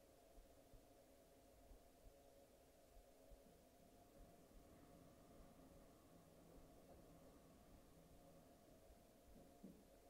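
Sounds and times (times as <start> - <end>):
faint low sound: 0.0 - 10.0
faint steady hum: 0.0 - 10.0.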